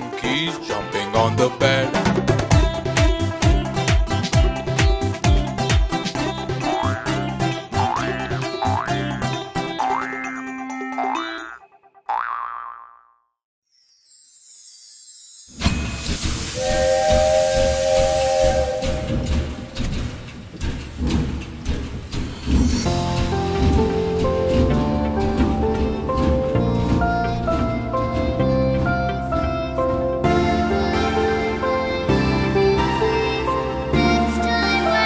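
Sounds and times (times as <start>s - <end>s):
bouncy children's song: 0.0s - 11.6s, 22.9s - 35.0s
children's tune: 0.0s - 11.6s, 22.9s - 35.0s
cartoon boing: 7.8s - 9.1s, 9.8s - 13.4s
steam hiss: 15.5s - 23.9s
cartoon train whistle: 16.6s - 19.8s.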